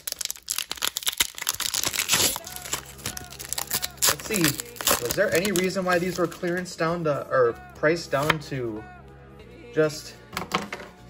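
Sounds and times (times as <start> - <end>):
foil wrapper tearing and crinkling: 0.0 - 6.7.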